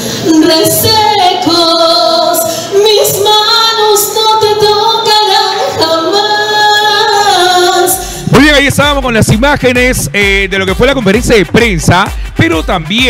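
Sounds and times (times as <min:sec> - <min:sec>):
woman singing a ballad: 0:00.0 - 0:08.2.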